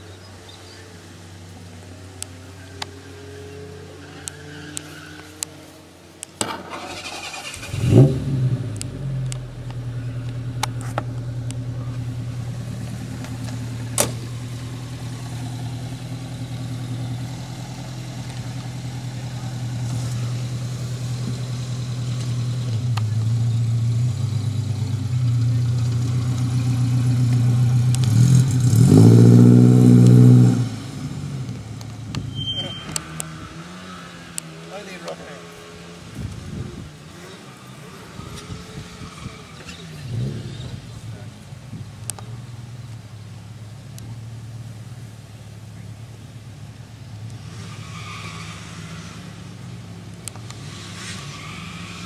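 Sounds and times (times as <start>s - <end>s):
car engine starting and idling: 6.0s - 35.4s
car engine revving hard: 6.7s - 9.3s, 28.0s - 31.6s.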